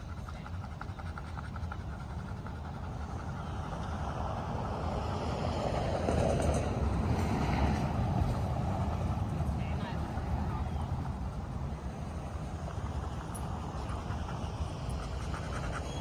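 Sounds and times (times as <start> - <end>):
vehicle passing rumble: 0.0 - 16.0.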